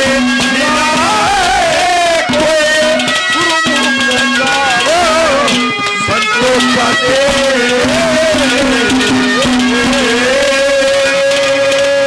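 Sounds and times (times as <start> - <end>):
harmonium drone: 0.0 - 12.0
person singing long held note: 0.0 - 12.0.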